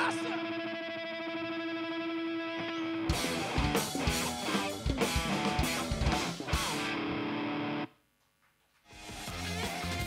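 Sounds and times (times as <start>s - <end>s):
electric guitar sustained note: 0.0s - 7.9s.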